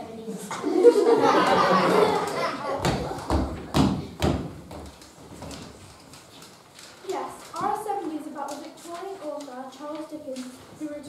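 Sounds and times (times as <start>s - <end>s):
footsteps on wooden floor: 2.7s - 6.0s.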